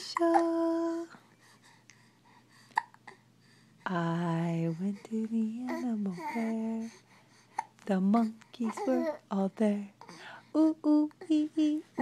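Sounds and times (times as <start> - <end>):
infant catch of breath: 10.0 - 10.5.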